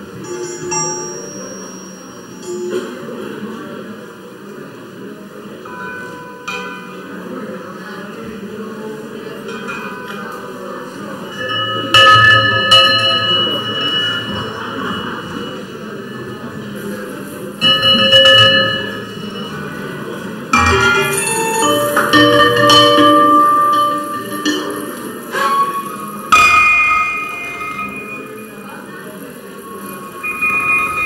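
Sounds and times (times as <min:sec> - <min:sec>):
bell-like strikes ringing: 0:00.2 - 0:03.6, 0:05.6 - 0:07.6, 0:11.2 - 0:31.0
bell-like electronic tones: 0:20.6 - 0:28.8, 0:29.4 - 0:31.0.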